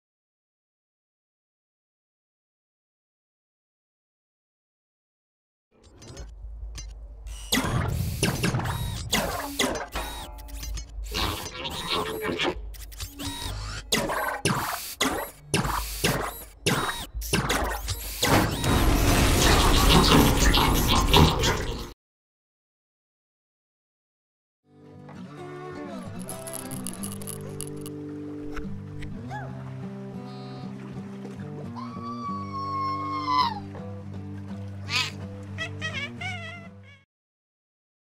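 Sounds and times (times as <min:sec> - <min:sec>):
robot joints clicking and clanking: 0:05.8 - 0:14.6, 0:26.1 - 0:27.9
warbling squeak: 0:05.9 - 0:21.9, 0:26.1 - 0:27.9
cartoon creature squeal: 0:11.1 - 0:12.6, 0:31.8 - 0:33.6.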